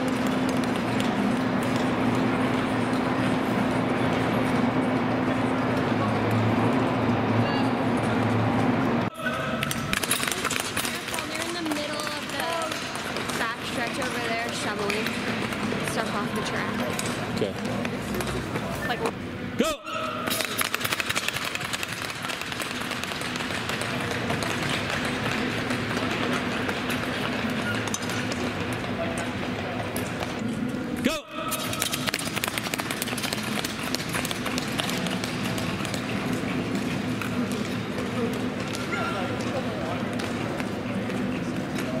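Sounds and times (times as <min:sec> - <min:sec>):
skate blades on ice: 0:00.0 - 0:07.1, 0:09.2 - 0:18.9, 0:20.2 - 0:42.0
indoor rink noise: 0:00.0 - 0:42.0.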